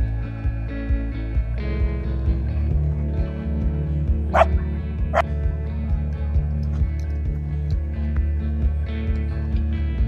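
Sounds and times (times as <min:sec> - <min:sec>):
background music with steady beat: 0:00.0 - 0:10.0
dog barking: 0:04.3 - 0:04.5.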